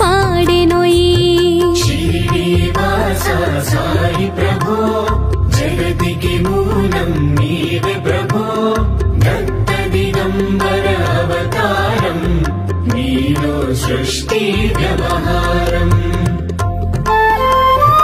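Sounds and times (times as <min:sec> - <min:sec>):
devotional instrumental melody: 0:00.0 - 0:18.0
regular percussion beat: 0:00.0 - 0:18.0.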